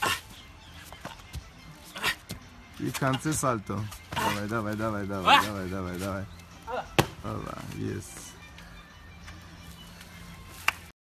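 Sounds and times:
man shouting: 0:05.2 - 0:05.6.

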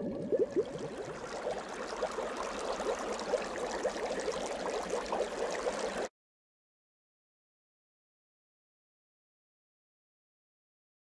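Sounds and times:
water bubbling: 0:00.0 - 0:06.1.

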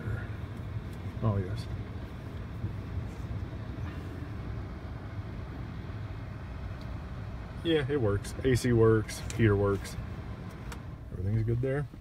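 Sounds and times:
blower fan pushing air: 0:00.0 - 0:12.0
car engine idling: 0:00.0 - 0:12.0.

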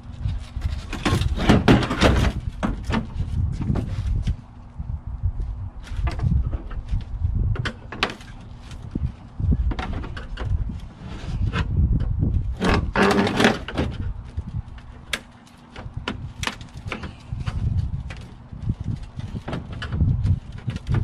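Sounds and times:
scraping: 0:05.8 - 0:21.0.

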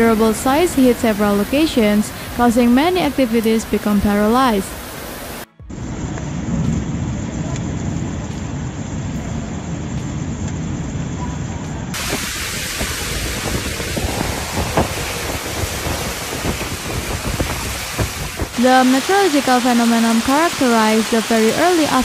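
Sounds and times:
heavy rain and hail: 0:00.0 - 0:05.4, 0:11.9 - 0:22.0
wind buffeting the microphone: 0:05.7 - 0:22.0.

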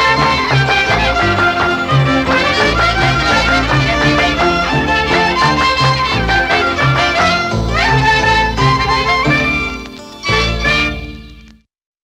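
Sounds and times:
folk band final chord: 0:00.0 - 0:11.3.

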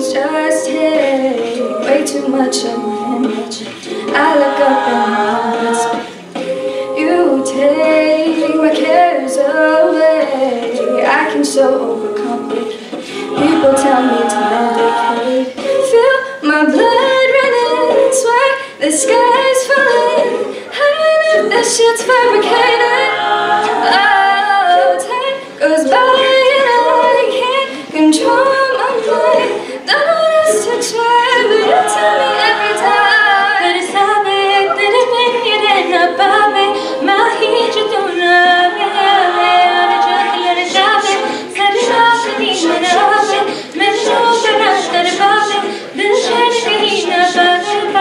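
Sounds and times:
a cappella group singing: 0:00.0 - 0:48.0.

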